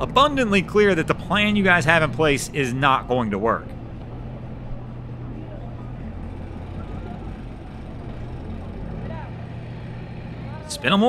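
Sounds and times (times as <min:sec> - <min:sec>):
truck engine running under throttle: 0:00.0 - 0:11.0.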